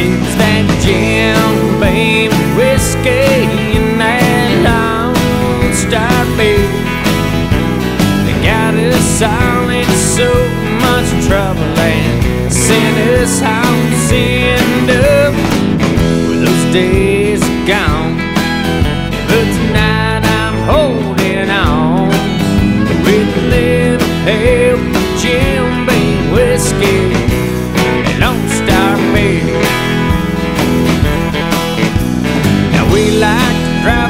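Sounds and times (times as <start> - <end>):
country band instrumental: 0.0 - 34.0
lead guitar line with bends: 0.0 - 34.0.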